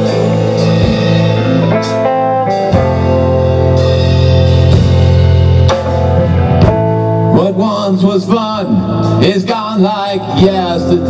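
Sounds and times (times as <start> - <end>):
rock band playing: 0.0 - 11.0
man singing: 7.3 - 11.0.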